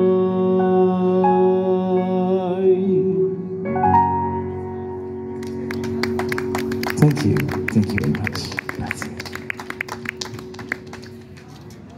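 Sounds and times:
electronic keyboard chord: 0.0s - 11.4s
applause: 5.4s - 11.9s.

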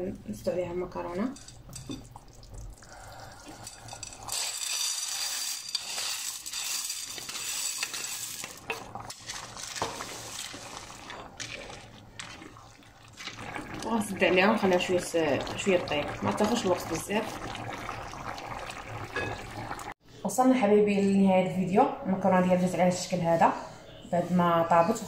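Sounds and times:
pasta pouring into pan: 2.2s - 20.0s.

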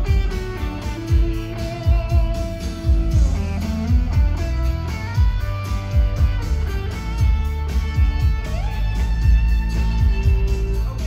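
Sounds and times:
bass: 0.0s - 11.0s
low drum beat: 0.0s - 11.0s.

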